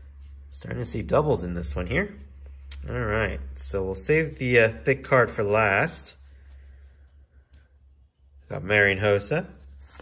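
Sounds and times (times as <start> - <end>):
rustling of trading cards: 9.0 - 10.0.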